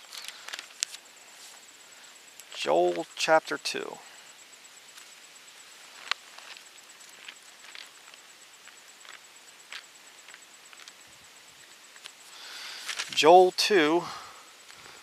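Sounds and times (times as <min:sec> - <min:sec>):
faint high-pitched whine: 0:00.0 - 0:15.0
paper pages rustling: 0:12.8 - 0:13.2.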